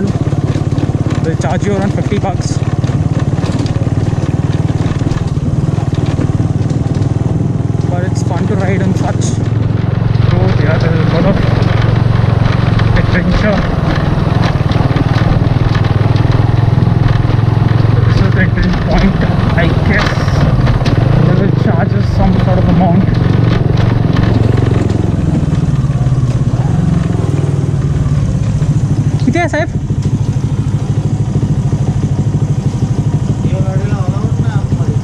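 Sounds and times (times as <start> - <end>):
motorcycle engine running: 0.0 - 35.0
road and wind noise: 0.0 - 35.0.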